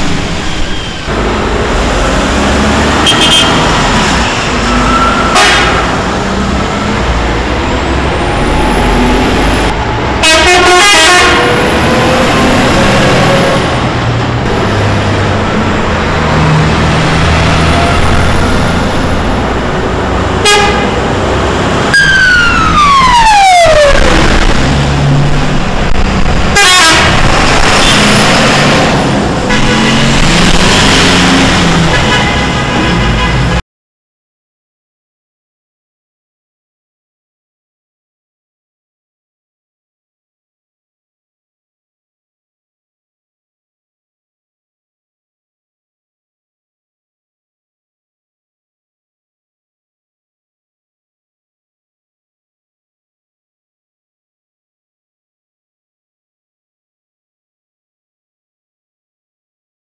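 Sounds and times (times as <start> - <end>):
heavy truck engines rumbling: 0.0 - 33.6
truck horn blasts: 2.9 - 4.0, 4.7 - 6.2, 10.2 - 11.9, 20.4 - 21.2, 26.5 - 28.2, 29.4 - 30.4, 31.7 - 33.6
siren falling in pitch: 21.9 - 24.4.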